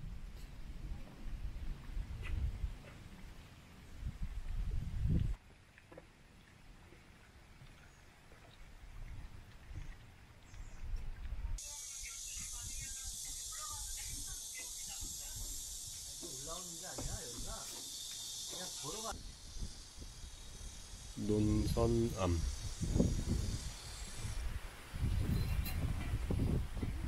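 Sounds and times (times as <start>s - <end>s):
cicadas hissing: 11.6s - 27.0s.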